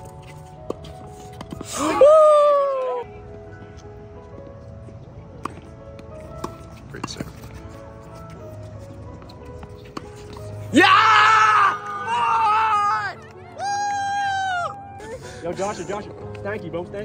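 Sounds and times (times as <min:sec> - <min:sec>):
background music: 0:00.0 - 0:17.0
tennis balls struck by rackets: 0:05.4 - 0:10.8.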